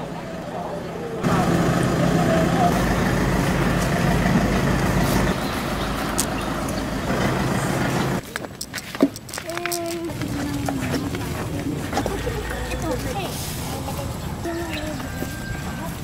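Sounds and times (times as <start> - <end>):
voices: 0.0 - 8.6, 9.4 - 16.0
vehicle engine rumbling: 0.0 - 16.0.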